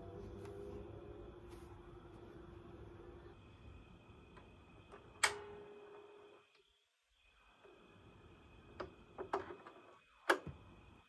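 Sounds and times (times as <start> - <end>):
turntable mechanism hum: 0.0 - 11.0.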